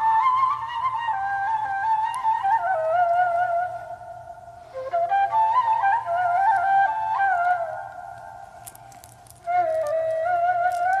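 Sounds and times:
slow woodwind melody: 0.0 - 11.0.

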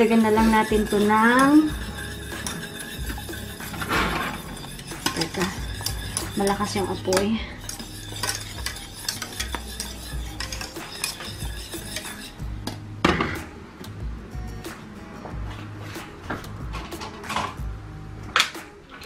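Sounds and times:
whisk clanking in pan: 0.0 - 12.4
whisk scraping against saucepan: 0.0 - 12.5.

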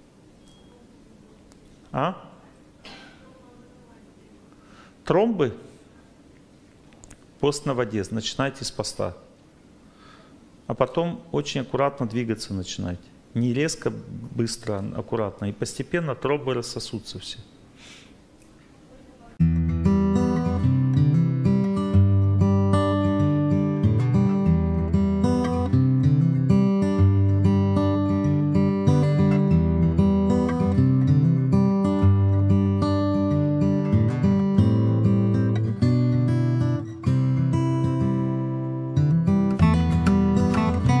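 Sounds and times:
acoustic guitar music: 19.4 - 41.0.

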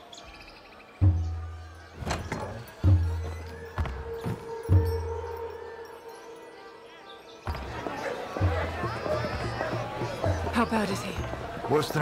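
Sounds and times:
crowd street chatter: 6.6 - 12.0.

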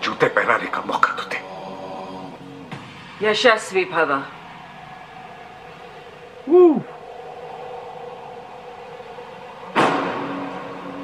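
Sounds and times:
faint musical drone: 0.0 - 11.0
low held tone: 1.4 - 11.0
loud impact hit: 2.7 - 11.0.

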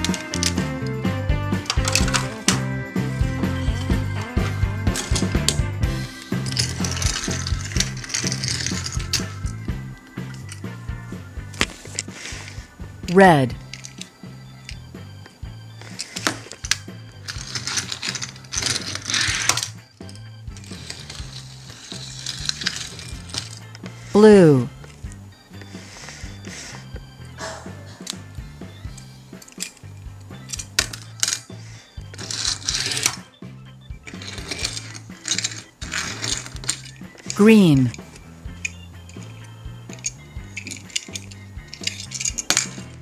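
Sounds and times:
toy cars clicking together: 0.0 - 0.9, 1.6 - 2.6, 4.9 - 10.8, 11.6 - 12.6, 13.6 - 14.9, 15.8 - 24.0, 28.8 - 33.3, 34.0 - 43.0
toy cars rolling on tabletop: 0.0 - 1.0, 1.6 - 12.8, 13.6 - 27.2, 27.8 - 43.0
soft background music: 0.0 - 43.0.

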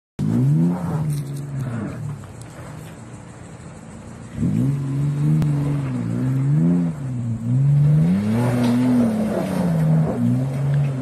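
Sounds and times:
engine revving hard: 4.4 - 11.0.

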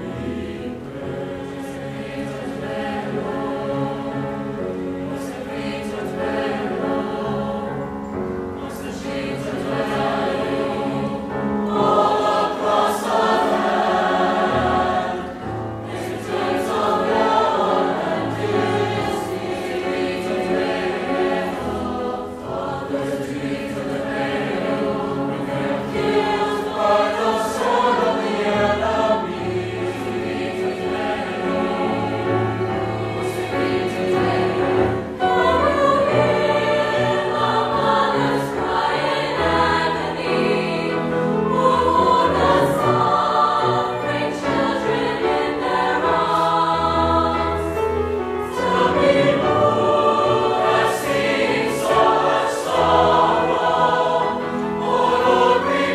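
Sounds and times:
choir singing: 0.0 - 55.9.

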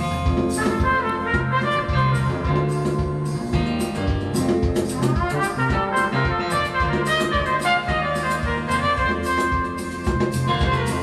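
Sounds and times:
jazz music over loudspeakers: 0.0 - 11.0.

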